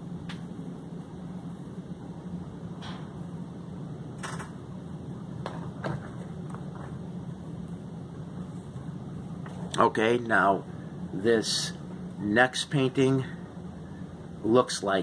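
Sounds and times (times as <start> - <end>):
low room hum: 0.0 - 15.0.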